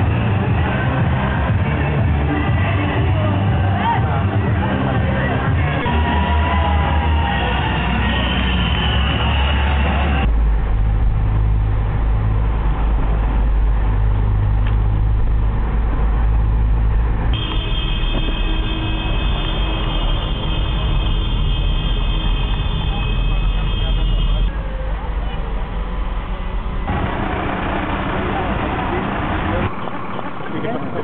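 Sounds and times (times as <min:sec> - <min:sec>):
music: 0:00.0 - 0:10.3
car engine and tyres rumbling: 0:00.0 - 0:31.0
steady high whine: 0:25.8 - 0:31.0.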